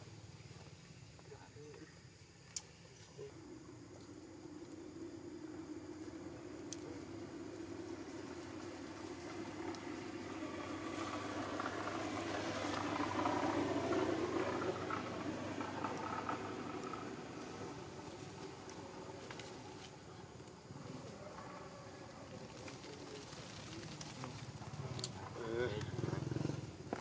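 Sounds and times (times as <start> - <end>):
motor engine humming: 4.4 - 21.3.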